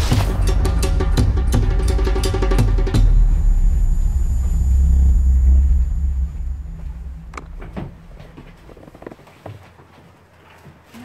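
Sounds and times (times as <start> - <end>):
faint high whine: 0.0 - 9.3
deep cinematic bass rumble: 0.0 - 9.4.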